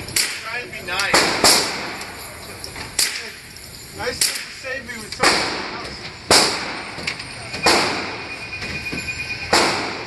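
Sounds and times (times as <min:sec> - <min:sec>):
gunshots echoing indoors: 0:00.2 - 0:02.2, 0:05.2 - 0:08.4, 0:09.4 - 0:10.0.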